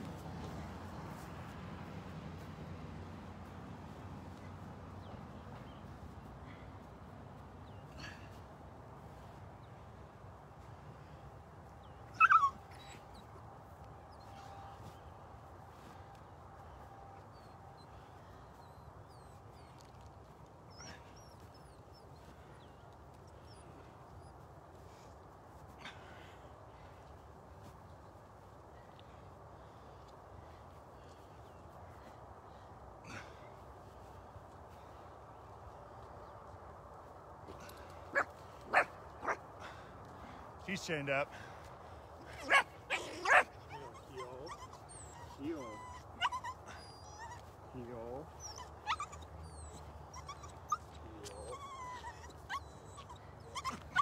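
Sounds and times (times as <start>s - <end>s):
dog whimpering: 12.2s - 13.2s, 42.3s - 47.6s, 48.3s - 54.0s
dog barking: 38.1s - 39.4s, 42.4s - 43.6s.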